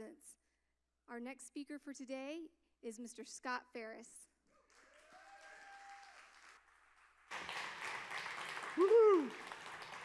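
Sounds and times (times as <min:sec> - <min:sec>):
congregation applauding: 0:04.6 - 0:10.0.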